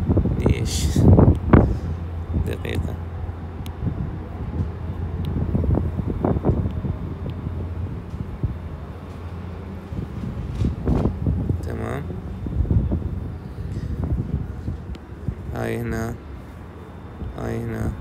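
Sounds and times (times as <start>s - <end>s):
air rushing across microphone: 0.0s - 2.5s, 9.8s - 15.8s
air conditioner humming: 0.0s - 18.0s.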